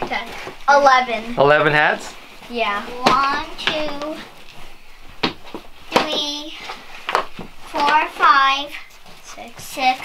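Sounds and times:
fabric caps rustling: 0.0 - 10.0.

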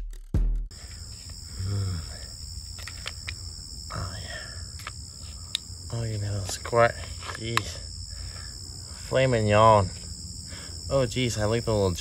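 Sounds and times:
insects chirring: 0.7 - 12.0
plastic cup clicks and rustles: 2.7 - 3.4, 4.7 - 5.0, 6.4 - 7.7.

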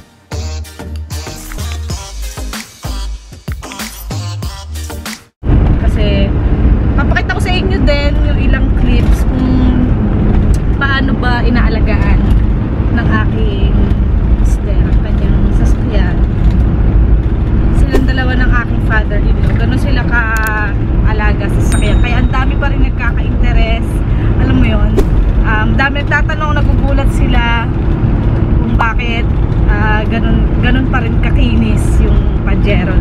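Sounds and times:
road and engine rumble: 0.8 - 33.0
woman talking: 5.8 - 6.4, 7.0 - 10.0, 10.8 - 16.3, 17.8 - 27.8, 28.6 - 33.0.

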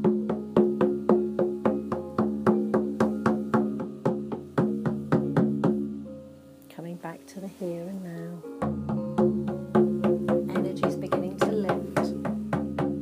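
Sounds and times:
hand drum beating: 0.0 - 6.1, 8.6 - 13.0.

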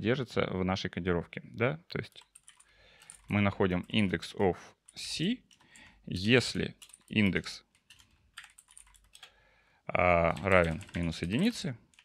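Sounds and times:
computer keyboard typing: 2.1 - 9.4, 10.2 - 12.0.

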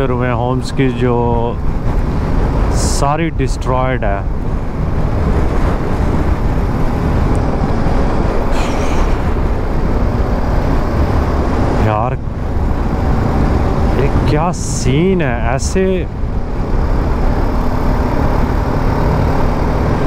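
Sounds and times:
road noise: 0.0 - 20.0
wind rush on microphone: 0.0 - 20.0.

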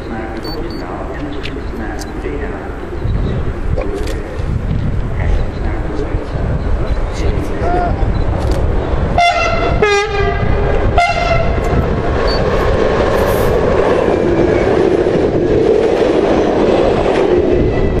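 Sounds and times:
train passing with rail noise: 0.0 - 18.0
train horn blasts: 9.2 - 11.8.

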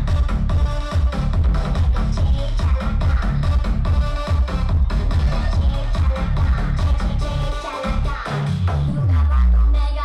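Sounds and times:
kick drum: 0.0 - 8.9
electronic dance music: 0.0 - 10.0
repeating bass line: 0.0 - 10.0.

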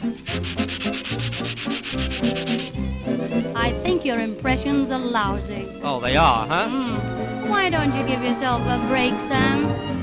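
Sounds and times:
rapid rhythmic scraping: 0.0 - 2.9.

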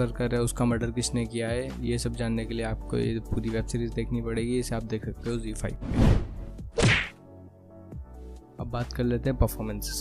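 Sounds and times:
faint background music: 0.0 - 10.0
whoosh and hit transitions: 5.8 - 7.2.

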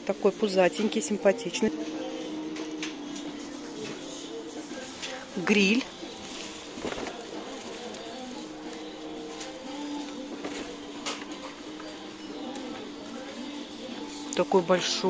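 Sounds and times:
faint background music: 0.0 - 15.0.

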